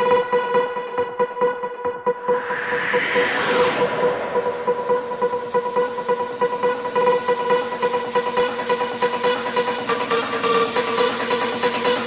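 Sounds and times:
hard trance music: 0.0s - 12.0s.

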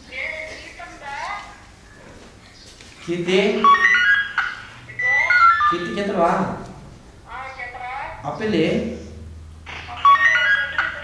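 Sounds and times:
person speaking: 3.0s - 4.2s, 4.8s - 9.2s.

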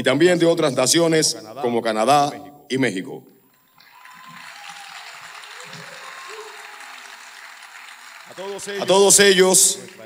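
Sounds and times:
audience applauding: 3.5s - 10.0s.

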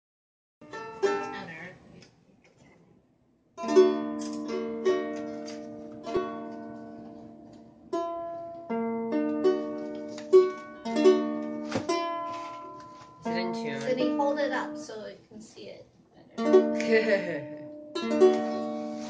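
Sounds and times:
ukulele strumming: 0.6s - 1.7s, 3.6s - 15.0s, 16.4s - 19.0s.

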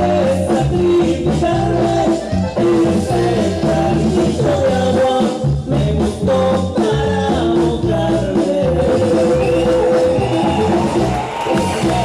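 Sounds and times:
latin-style music: 0.0s - 12.0s.

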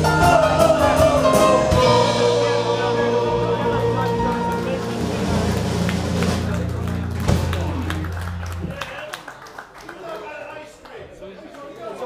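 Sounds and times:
live band final chord: 0.0s - 8.9s
drum hit: 5.0s - 8.8s.

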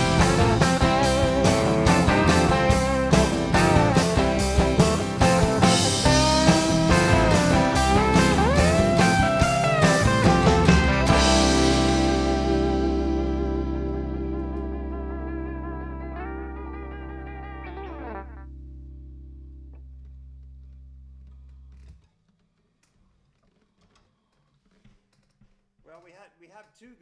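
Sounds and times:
wavering guitar note sliding down: 0.0s - 19.9s
distorted electric guitar chord ringing: 0.0s - 20.5s.

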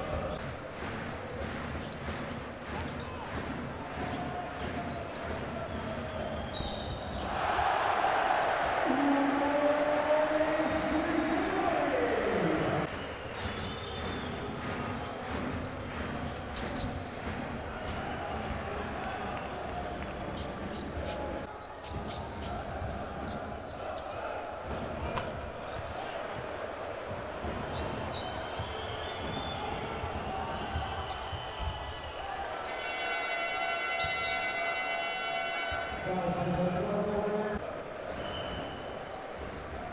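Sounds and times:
crowd noise: 0.0s - 39.9s
arena horn long tone: 32.7s - 36.1s.

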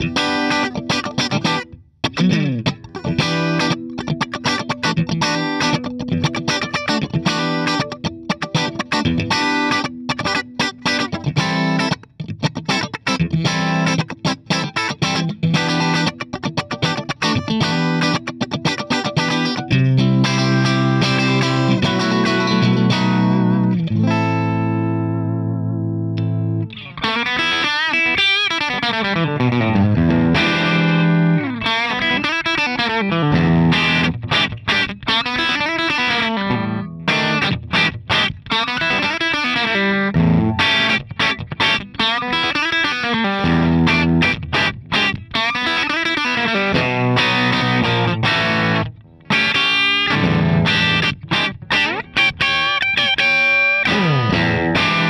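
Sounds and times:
clean electric guitar: 0.0s - 55.0s.

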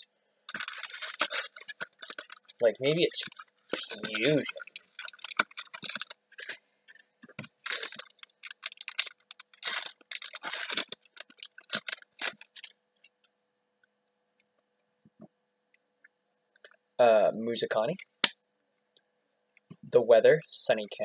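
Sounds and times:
cards being handled: 0.5s - 6.5s
foil wrapper crinkling: 0.5s - 13.1s.

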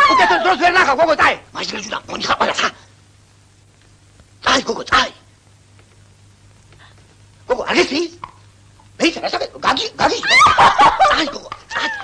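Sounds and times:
bursts of laughter: 10.2s - 12.0s.

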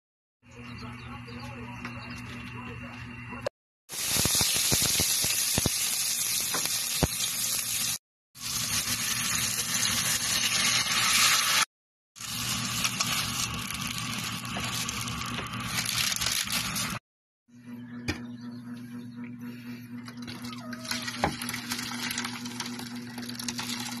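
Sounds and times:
vegetables sizzling in oil: 3.9s - 17.0s
steady low hum: 12.2s - 23.8s.

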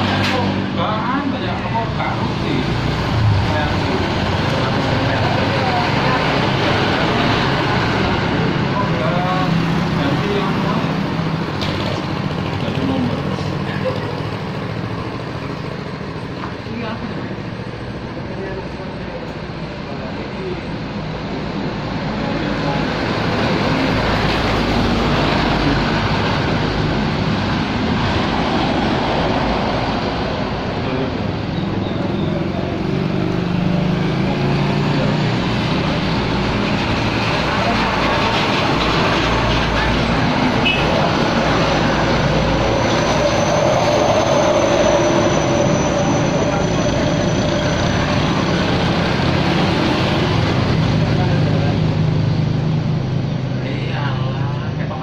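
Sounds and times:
trucks passing close by: 0.0s - 55.0s.

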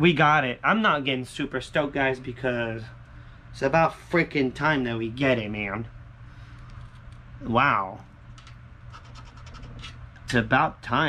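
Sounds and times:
coin scraping lottery ticket: 8.9s - 10.0s.

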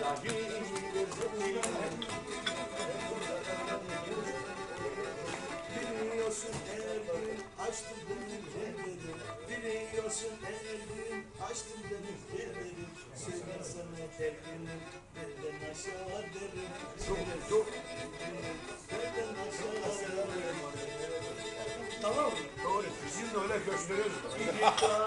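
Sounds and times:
bowed fiddle folk melody: 0.0s - 25.0s.

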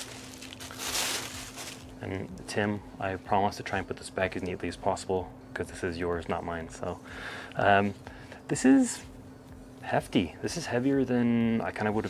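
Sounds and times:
plastic bag crinkling: 0.0s - 2.0s.

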